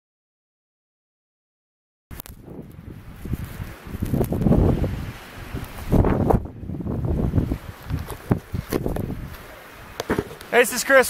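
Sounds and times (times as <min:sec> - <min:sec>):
strong wind gusting on microphone: 0:02.1 - 0:10.2.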